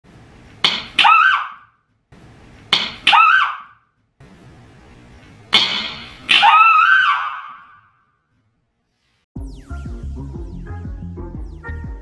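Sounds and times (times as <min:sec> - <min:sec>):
sharp crack: 0:05.5 - 0:06.6.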